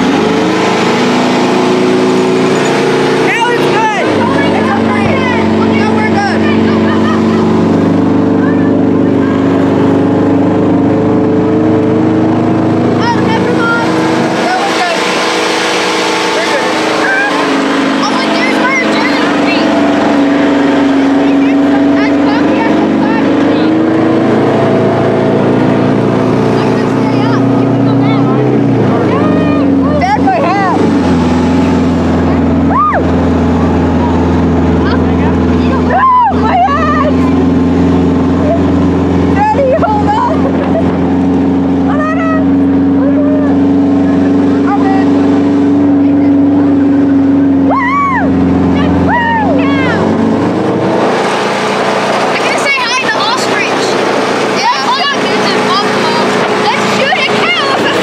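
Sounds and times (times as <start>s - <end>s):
tank engine running: 0.0s - 58.0s.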